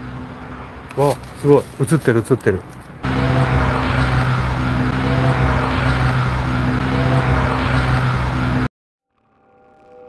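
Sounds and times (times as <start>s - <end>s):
low drone: 3.0s - 10.0s.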